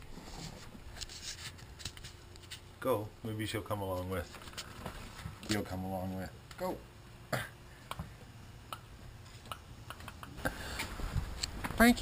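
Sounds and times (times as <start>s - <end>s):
soft outdoor background: 0.0s - 12.0s.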